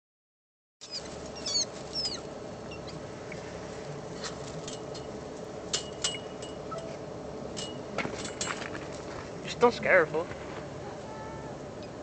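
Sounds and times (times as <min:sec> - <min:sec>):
small animal squeaking: 0:00.8 - 0:03.0, 0:06.7 - 0:07.0
steady low hum: 0:00.8 - 0:12.0.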